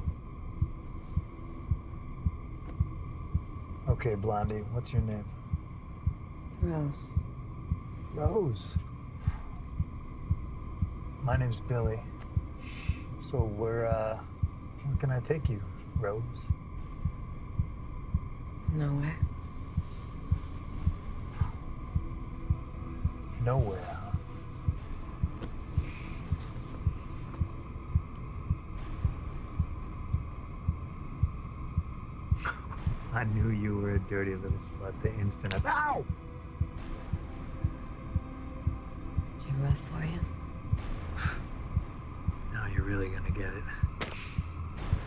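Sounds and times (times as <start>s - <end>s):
low heartbeat-like thumps: 0.0s - 45.0s
steady hum: 0.0s - 45.0s.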